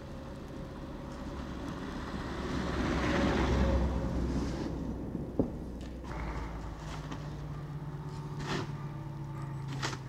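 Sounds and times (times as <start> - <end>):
car engine rumble: 0.0 - 10.0.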